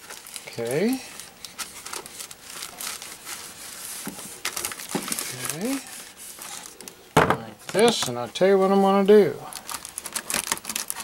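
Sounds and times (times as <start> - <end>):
plastic film crinkling: 0.0 - 7.0, 7.6 - 11.0.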